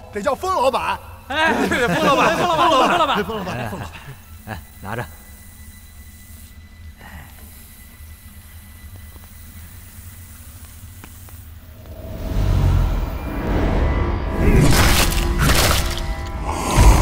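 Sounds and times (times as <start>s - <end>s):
faint hiss: 5.4s - 12.0s
low ominous drone: 11.6s - 17.0s
loud deep rumble: 11.9s - 17.0s.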